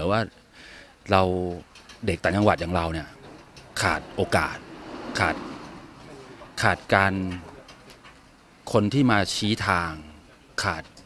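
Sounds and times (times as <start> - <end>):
man speaking: 1.1 - 8.0.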